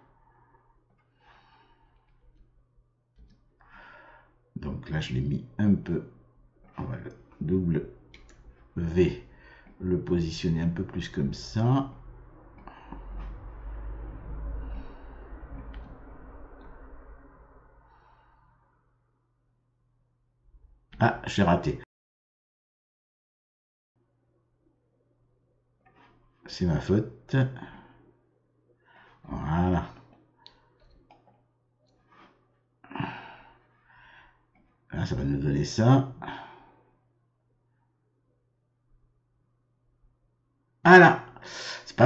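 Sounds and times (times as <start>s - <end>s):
faint breath near microphone: 0.0s - 2.5s, 3.6s - 4.4s, 8.3s - 9.8s, 12.4s - 19.0s, 27.6s - 29.3s, 32.0s - 34.5s, 36.2s - 37.1s
low steady hum: 0.0s - 21.8s
faint low sound: 4.4s - 21.8s.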